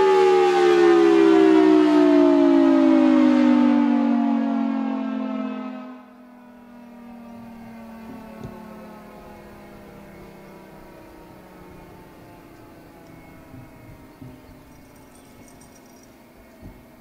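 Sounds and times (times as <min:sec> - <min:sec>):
warning siren winding down: 0:00.0 - 0:17.0.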